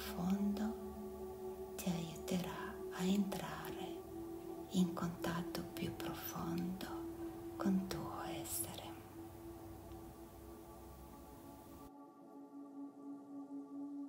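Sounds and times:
person whispering: 0.0 - 0.9, 1.8 - 9.1
ambient music drone: 0.0 - 14.0.

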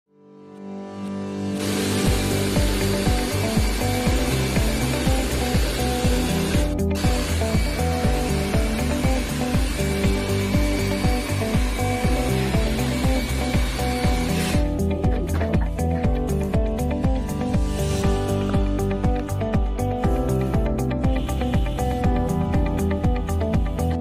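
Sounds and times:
fast-beat background music: 1.5 - 24.0.

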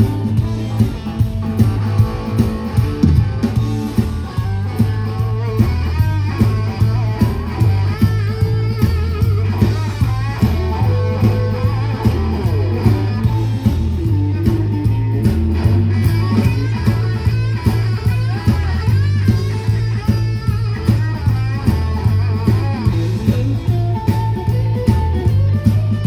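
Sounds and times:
bass line: 0.0 - 26.0
drum beat: 0.0 - 26.0
electric guitar lead: 0.0 - 26.0.

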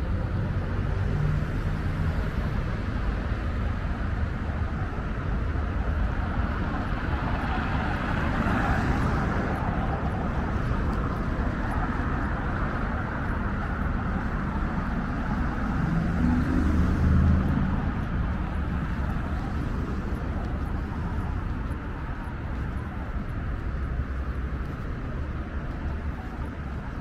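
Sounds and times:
hum of passing cars: 0.0 - 27.0
vehicle passing loudly: 15.4 - 21.8.

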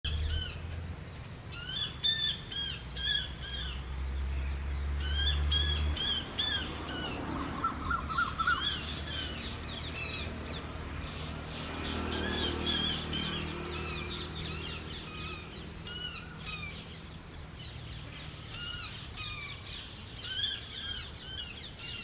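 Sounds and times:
bird screaming: 5.1 - 9.3.

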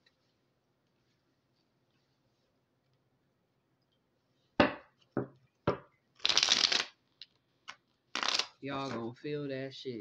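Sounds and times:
cards shuffling: 7.7 - 8.6.

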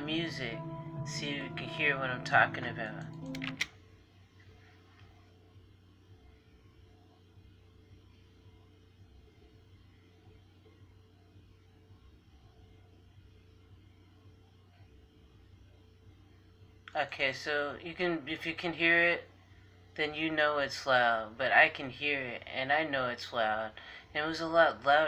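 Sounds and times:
muffled bass music through walls: 0.0 - 3.7.

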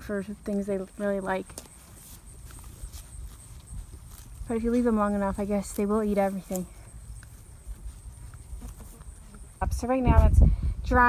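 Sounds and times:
goat tearing and chewing grass: 0.3 - 9.6.

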